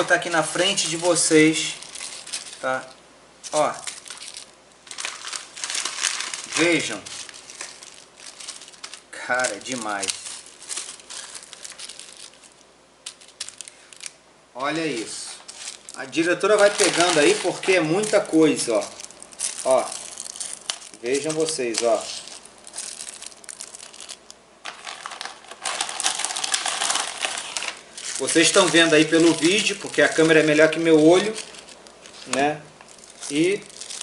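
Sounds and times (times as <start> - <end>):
plastic bags crinkling: 0.0 - 14.2, 14.8 - 34.0.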